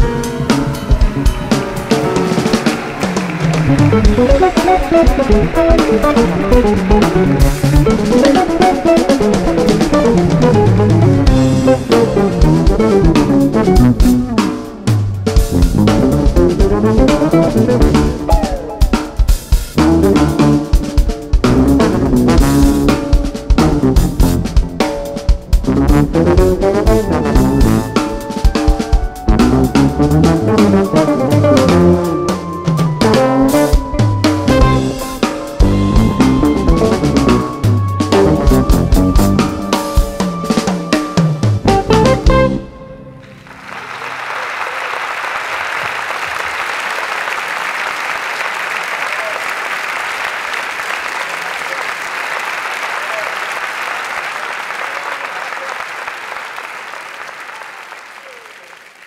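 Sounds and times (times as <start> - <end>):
audience applauding: 0.0 - 15.0, 15.9 - 20.5, 26.7 - 42.3, 43.2 - 59.0
jazz-fusion band playing loudly: 0.0 - 44.8.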